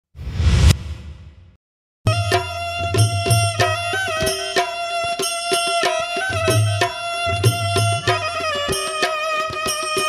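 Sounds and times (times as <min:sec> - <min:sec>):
whoosh ending in a hit: 0:00.2 - 0:01.6.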